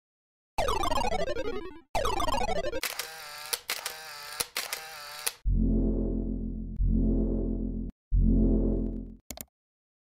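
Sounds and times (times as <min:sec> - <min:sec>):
sharp clicks: 0:02.8 - 0:05.4
steady electronic tone: 0:05.4 - 0:09.2.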